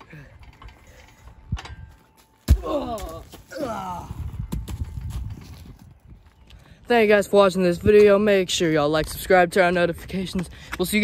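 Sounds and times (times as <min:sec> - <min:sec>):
shifting on metal climbing frame: 0:00.0 - 0:06.0.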